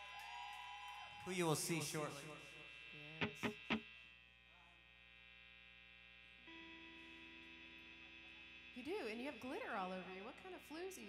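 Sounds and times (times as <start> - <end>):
faint electrical hum and buzz: 0.6 - 11.0.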